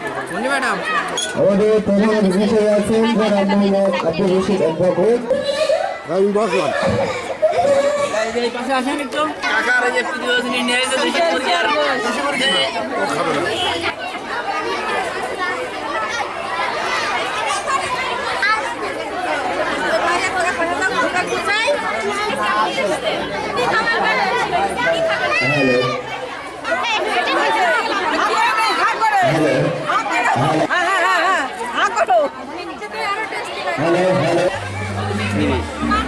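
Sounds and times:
crowd chatter: 0.0s - 36.0s.

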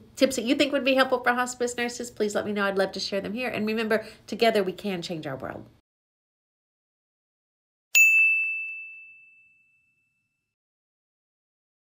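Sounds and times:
bright chime ringing: 8.0s - 10.3s.

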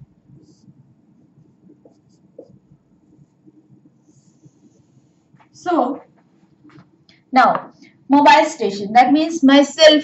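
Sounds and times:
marker scratching on whiteboard: 1.8s - 2.6s.

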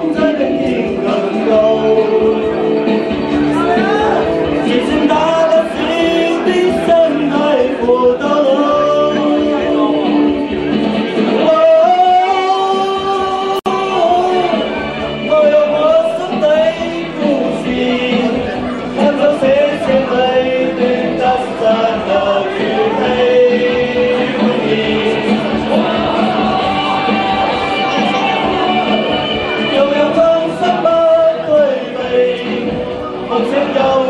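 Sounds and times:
karaoke backing track: 0.0s - 34.0s
man singing into microphone: 0.0s - 34.0s.

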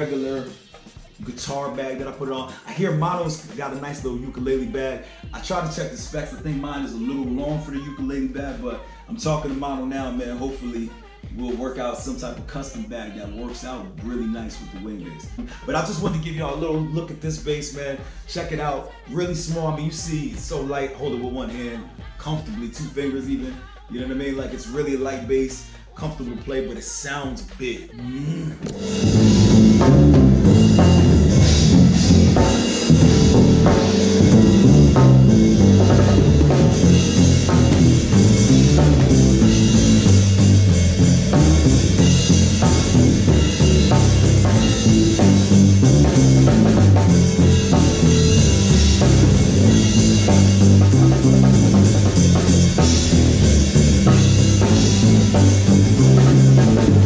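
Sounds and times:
drums: 0.0s - 57.0s
keyboard: 28.5s - 57.0s
electric bass line: 28.7s - 57.0s.

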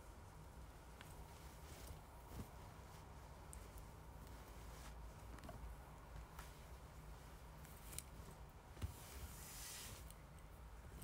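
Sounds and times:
faint handling sounds: 0.0s - 11.0s.

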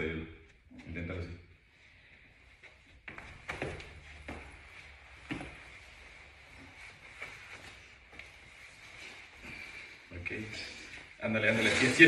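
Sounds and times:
soft thumps and shuffles on floor: 2.5s - 11.2s.

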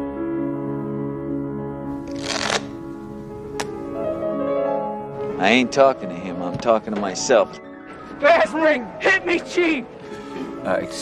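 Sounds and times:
soft piano music: 0.0s - 11.0s
playing cards riffled: 2.0s - 2.8s.

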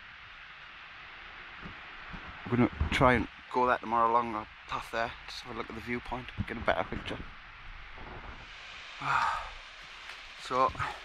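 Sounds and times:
distant waterfall rushing: 0.0s - 11.0s.

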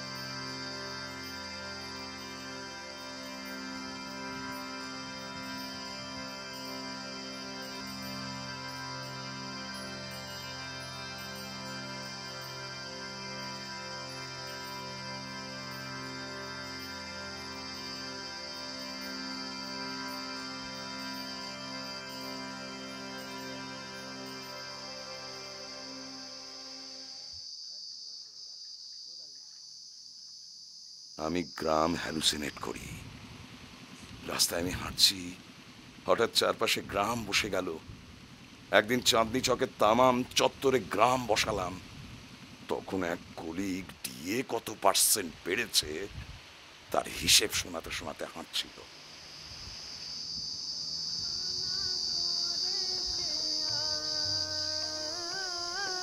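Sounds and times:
soft sustained music: 0.0s - 27.3s, 31.2s - 46.0s, 50.8s - 56.0s
crickets chirping: 0.0s - 56.0s
high-pitched insect drone: 0.0s - 56.0s.

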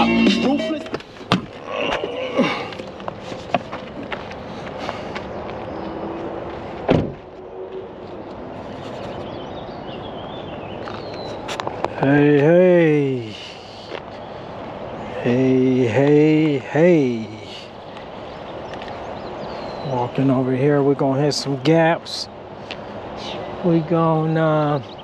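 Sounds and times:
rapping over hip hop music: 0.0s - 1.0s
car door shutting: 6.9s - 7.3s.

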